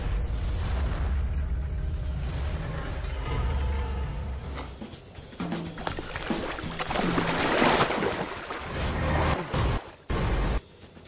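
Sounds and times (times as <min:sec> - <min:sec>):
background music with low notes: 0:01.4 - 0:11.0
water splashing in a pool: 0:05.8 - 0:10.0.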